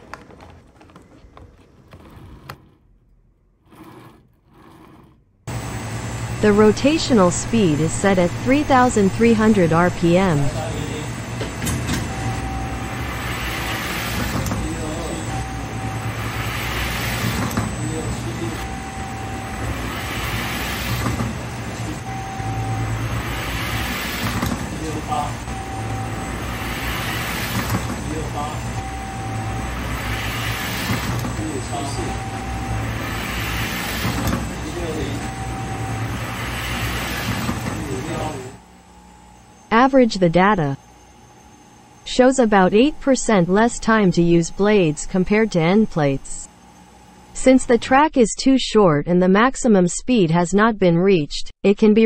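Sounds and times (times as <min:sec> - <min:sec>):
electric motors humming: 0:00.1 - 0:47.8.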